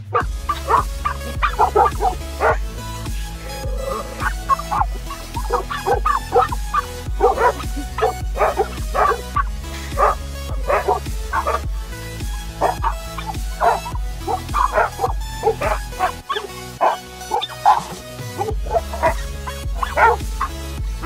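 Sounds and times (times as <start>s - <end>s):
background music with bass: 0.0s - 21.0s
dogs barking: 0.0s - 21.0s.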